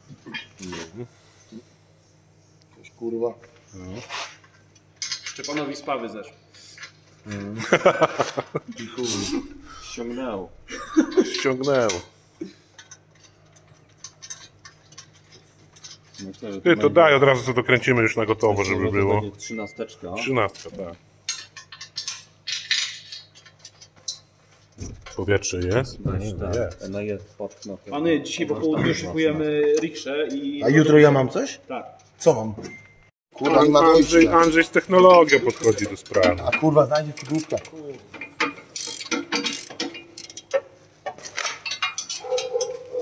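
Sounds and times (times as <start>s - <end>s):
wrench clinking on metal bolts: 12.8s - 16.3s, 33.9s - 42.9s
ratchet wrench clicking: 38.3s - 40.6s.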